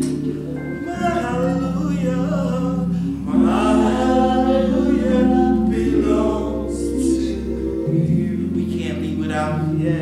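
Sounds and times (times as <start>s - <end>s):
voices singing gospel song: 0.0s - 10.0s.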